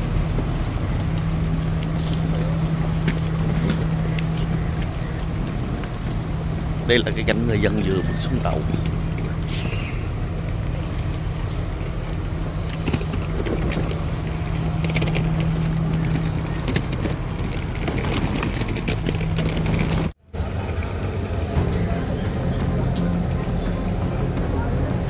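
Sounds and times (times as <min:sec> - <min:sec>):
diesel train engine idling: 0:00.0 - 0:25.0
faint voices of people: 0:20.4 - 0:25.0.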